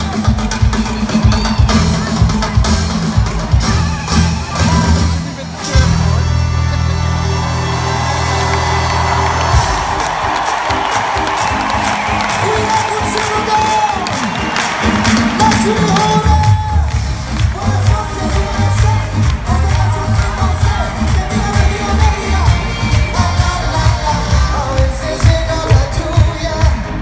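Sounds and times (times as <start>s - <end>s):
live band playing: 0.0s - 27.0s
crowd cheering and whooping: 6.6s - 26.2s.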